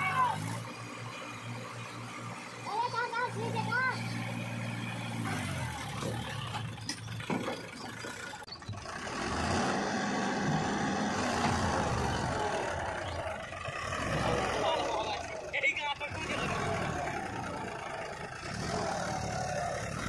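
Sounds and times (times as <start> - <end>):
tractor diesel engine revving: 0.0 - 20.0.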